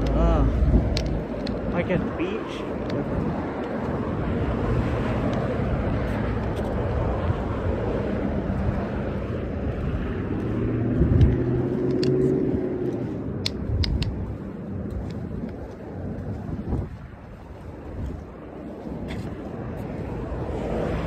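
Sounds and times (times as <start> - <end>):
road traffic passing: 0.0 - 21.0
vehicle engine hum: 0.0 - 21.0
light clicks: 12.9 - 15.7.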